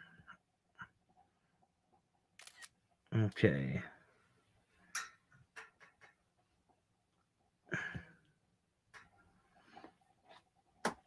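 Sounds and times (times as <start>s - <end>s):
camera shutter click: 2.4s - 2.7s.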